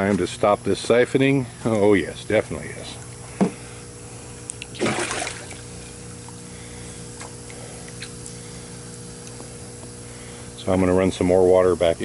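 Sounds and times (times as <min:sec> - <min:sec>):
low machine hum: 0:00.0 - 0:12.0
water splashing and trickling: 0:04.8 - 0:05.6.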